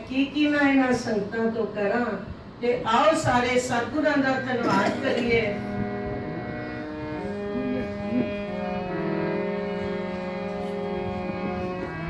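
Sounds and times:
harmonium holding a chord: 3.8s - 12.0s.

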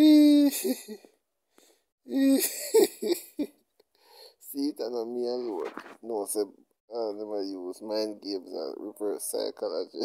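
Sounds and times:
person laughing: 0.2s - 1.1s, 2.1s - 3.6s.

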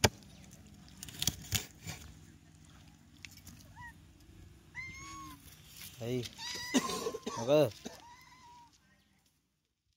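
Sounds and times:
high-pitched animal calls: 3.6s - 4.0s, 4.7s - 5.5s, 6.3s - 6.9s.

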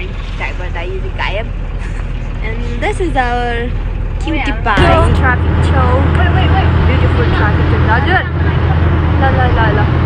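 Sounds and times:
bus engine droning: 0.0s - 10.0s.

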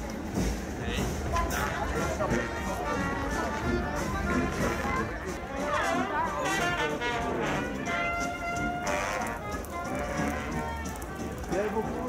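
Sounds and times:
brass band music: 0.0s - 12.0s
crowd and outdoor hiss: 0.0s - 12.0s
voices: 0.0s - 12.0s.

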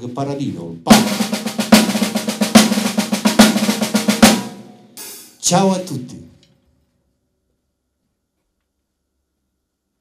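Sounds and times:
rapid snare drum strokes: 0.9s - 5.6s.

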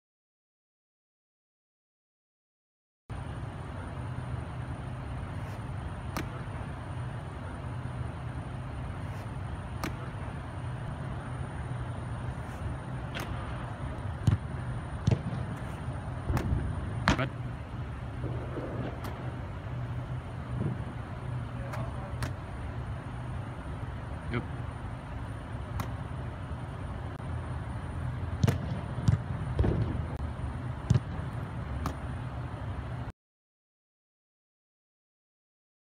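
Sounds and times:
steady low hum: 3.1s - 33.1s
sharp slaps and knocks: 5.5s - 6.4s, 9.7s - 10.1s, 13.1s - 13.5s, 14.2s - 17.3s, 18.2s - 19.2s, 21.7s - 22.4s, 25.7s - 26.0s, 28.4s - 30.0s, 31.8s - 32.1s.

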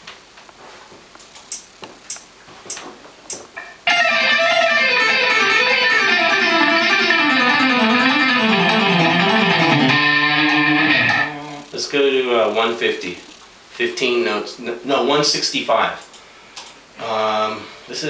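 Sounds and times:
metronome clicks: 1.5s - 3.4s, 4.8s - 11.8s
electric guitar rapid picked run: 3.9s - 11.8s.

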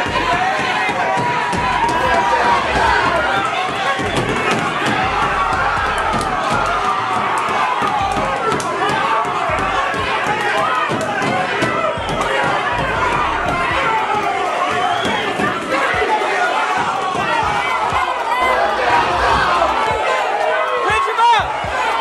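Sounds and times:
crowd shouting and talking: 0.0s - 22.0s.

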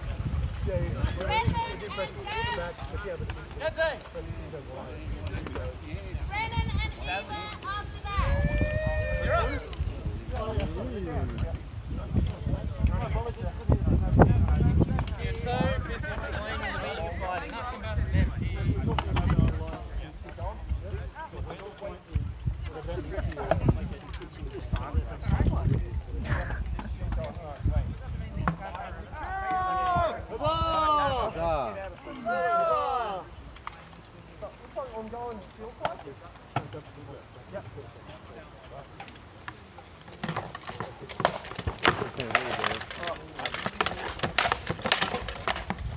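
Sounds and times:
wind on microphone: 0.0s - 3.4s, 7.8s - 31.6s
people talking and calling out: 0.0s - 45.9s.

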